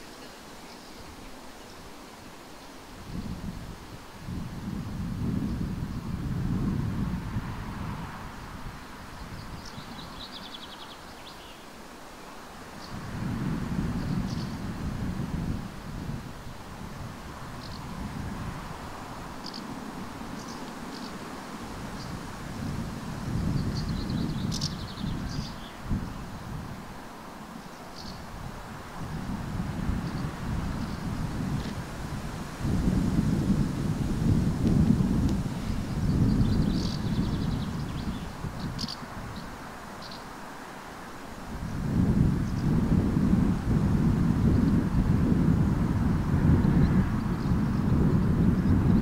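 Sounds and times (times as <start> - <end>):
small birds chirping: 0.0 - 3.4, 9.2 - 13.1, 13.9 - 14.6, 17.5 - 18.0, 19.3 - 21.3, 21.9 - 26.6, 27.6 - 28.3, 29.9 - 31.8, 34.7 - 40.4
wind buffeting microphone: 3.0 - 10.6, 12.8 - 40.1, 41.4 - 49.0.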